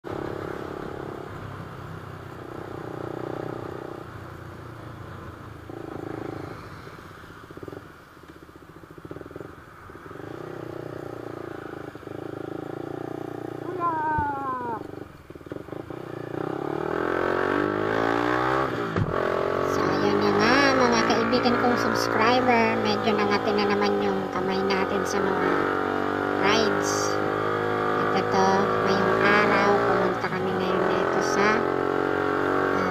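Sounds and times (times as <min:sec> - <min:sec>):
motorcycle engine revving: 0:00.0 - 0:32.9.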